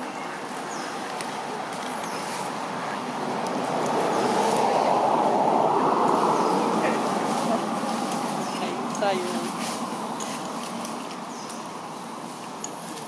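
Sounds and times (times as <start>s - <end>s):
outdoor rushing noise: 0.0s - 13.0s.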